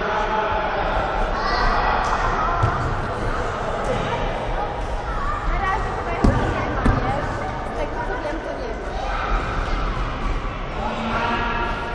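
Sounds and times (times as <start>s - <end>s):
children chattering and calling: 0.8s - 11.8s
football thuds: 6.2s - 7.2s.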